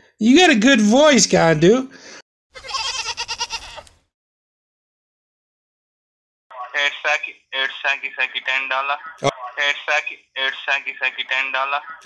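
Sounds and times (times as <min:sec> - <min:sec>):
goat bleating: 0:02.5 - 0:03.9.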